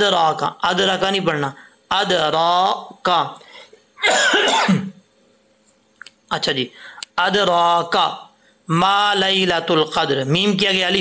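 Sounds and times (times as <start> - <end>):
man coughing: 4.0 - 5.0.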